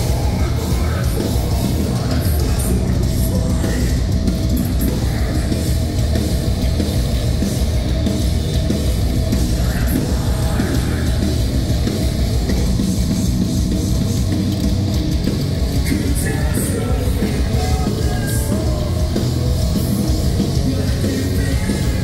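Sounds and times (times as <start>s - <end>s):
bass guitar: 0.0s - 22.0s
distorted electric guitar: 0.0s - 22.0s
drum kit: 0.0s - 22.0s.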